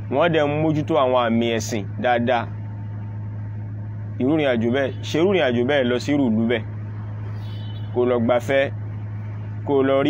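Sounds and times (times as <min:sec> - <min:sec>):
steady low hum: 0:00.0 - 0:10.0
man speaking: 0:04.2 - 0:06.7.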